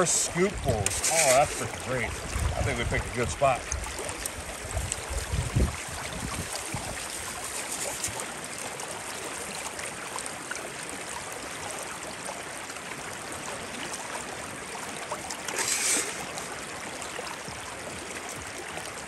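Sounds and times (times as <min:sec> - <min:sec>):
water splash: 0:00.0 - 0:08.8, 0:15.1 - 0:17.0
water running through metal sluice: 0:00.0 - 0:19.0.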